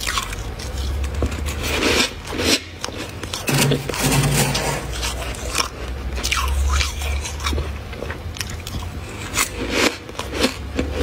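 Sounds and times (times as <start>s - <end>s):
crunching frost being chewed: 0.0s - 4.0s, 4.8s - 11.0s
steady low hum: 0.0s - 11.0s.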